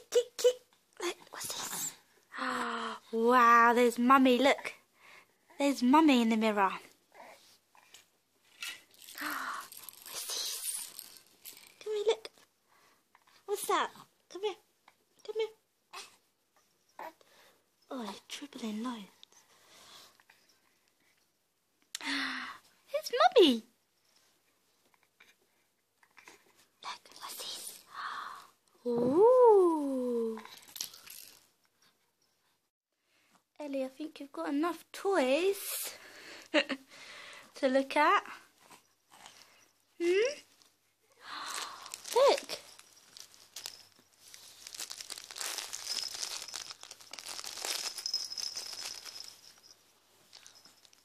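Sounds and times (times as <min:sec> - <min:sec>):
person whispering: 0:01.0 - 0:03.5, 0:09.2 - 0:10.9, 0:26.8 - 0:28.4
crinkly toy rustling: 0:08.4 - 0:11.9, 0:30.5 - 0:31.4, 0:41.4 - 0:51.0.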